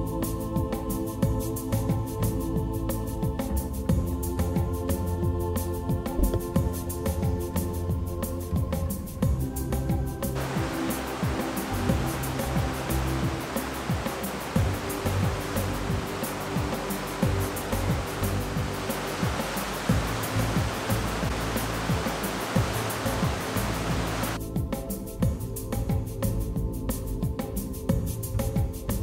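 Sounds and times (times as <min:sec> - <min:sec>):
background music with steady beat: 0:00.0 - 0:29.0
fast-flowing creek rushing: 0:10.4 - 0:24.4.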